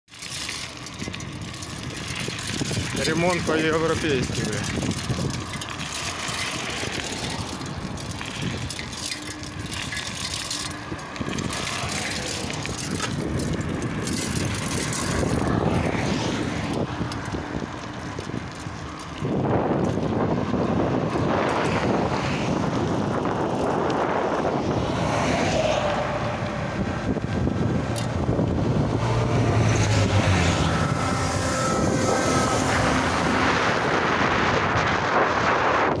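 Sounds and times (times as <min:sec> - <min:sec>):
highway traffic passing: 0:00.1 - 0:36.0
passing vehicle engine: 0:00.2 - 0:36.0.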